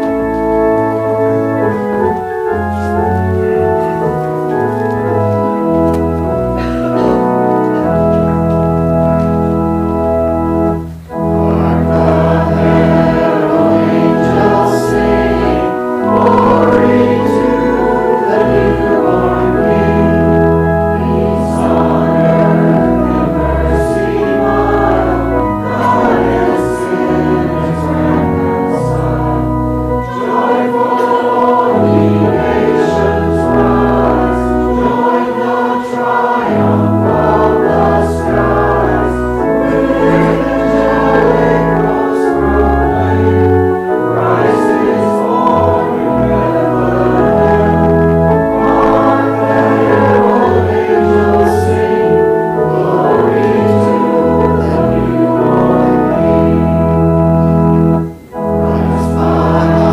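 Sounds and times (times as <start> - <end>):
organ playing chords: 0.0 - 59.9
voices singing a hymn: 0.0 - 59.9.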